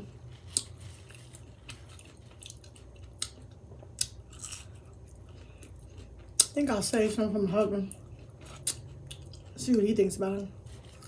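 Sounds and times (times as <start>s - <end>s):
person chewing food: 0.0s - 6.6s, 7.8s - 11.0s
low steady hum: 0.0s - 11.0s.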